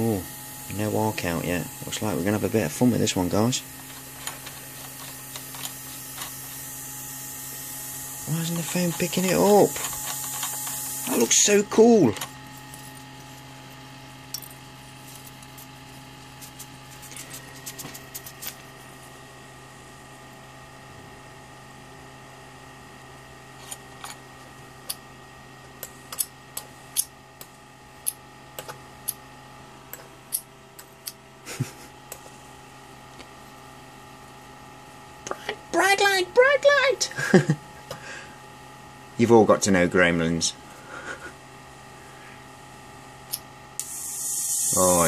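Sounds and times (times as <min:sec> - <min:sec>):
electric arcs snapping: 0:00.0 - 0:12.9, 0:43.3 - 0:45.0
transformer hum and whine: 0:00.0 - 0:45.0.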